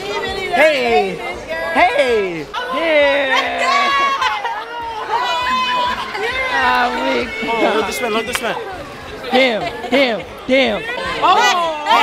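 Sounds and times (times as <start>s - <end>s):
people shouting and cheering: 0.0s - 12.0s.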